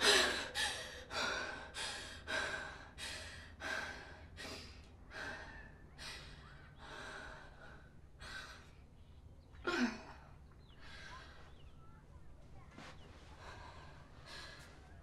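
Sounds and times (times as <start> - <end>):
woman breathing hard: 0.0 - 8.8.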